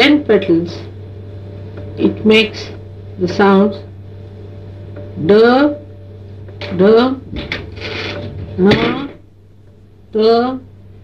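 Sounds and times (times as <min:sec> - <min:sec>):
low electrical hum: 0:00.0 - 0:11.0
woman pronouncing syllables: 0:10.1 - 0:10.7.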